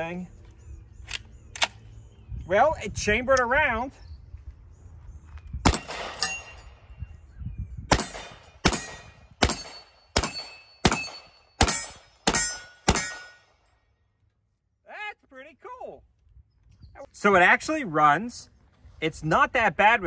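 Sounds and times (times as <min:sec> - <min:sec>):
carbine gunshots echoing: 0:05.6 - 0:06.6, 0:07.9 - 0:13.5.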